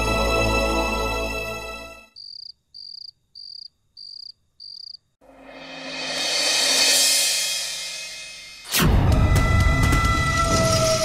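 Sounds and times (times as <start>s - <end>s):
cricket chirping: 2.1s - 5.2s
rising cymbal swell: 5.2s - 8.7s.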